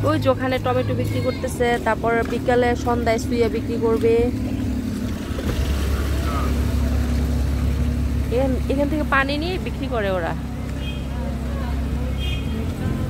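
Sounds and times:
people talking: 0:00.0 - 0:04.4, 0:05.7 - 0:07.2, 0:08.2 - 0:13.0
minibus engine rumble: 0:00.0 - 0:13.0.

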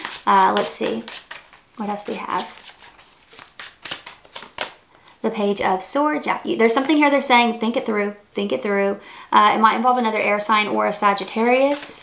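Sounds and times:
cards snapping and flicking: 0:00.0 - 0:01.6, 0:03.4 - 0:04.8.

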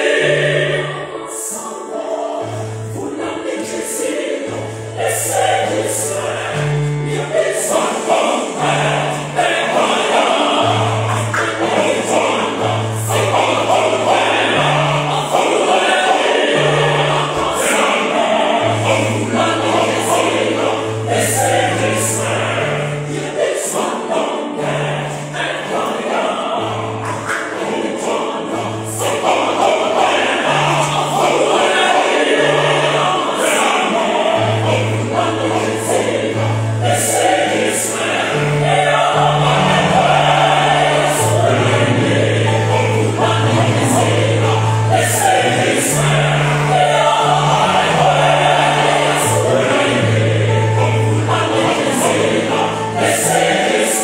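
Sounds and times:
gospel choir singing: 0:00.0 - 0:54.0.

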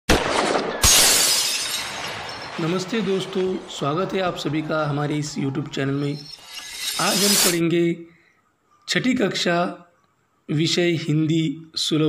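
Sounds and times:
shattering crash: 0:00.1 - 0:03.3.

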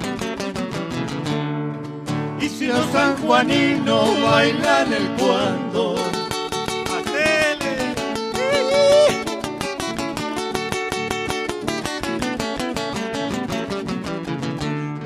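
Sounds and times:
acoustic guitars strummed fast: 0:00.0 - 0:15.0.

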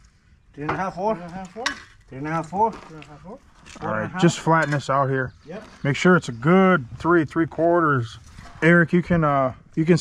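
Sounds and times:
man speaking: 0:00.6 - 0:10.0.

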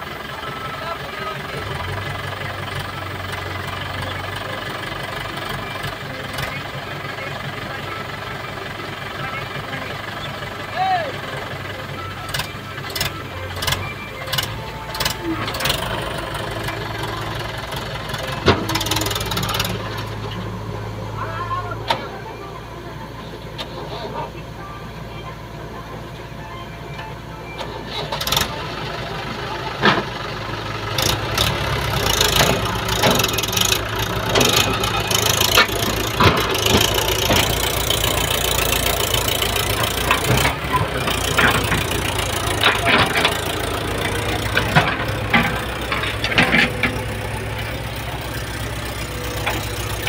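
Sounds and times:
tractor diesel engine running: 0:00.0 - 0:50.0.

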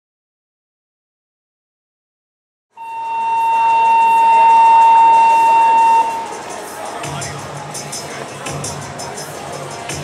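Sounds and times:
steady high-pitched tone: 0:02.8 - 0:06.9.

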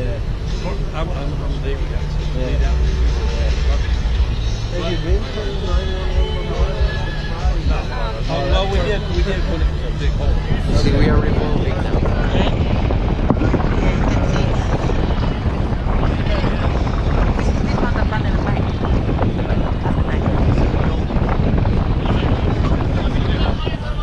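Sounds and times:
crowd chatter: 0:00.0 - 0:24.0
wind buffeting microphone: 0:00.0 - 0:24.0.

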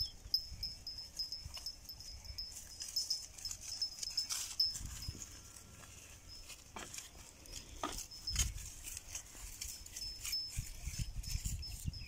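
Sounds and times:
goats grazing in grass: 0:00.0 - 0:12.0.

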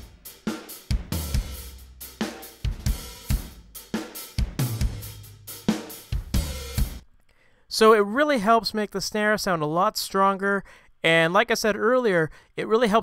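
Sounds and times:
rock drum beat: 0:00.0 - 0:07.0.

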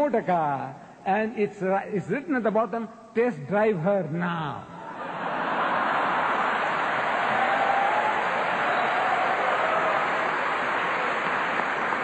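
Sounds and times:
audience laughing and clapping: 0:04.9 - 0:12.0.

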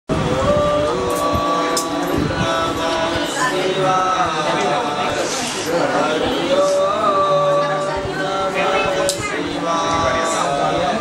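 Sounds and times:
men chanting: 0:00.1 - 0:11.0.

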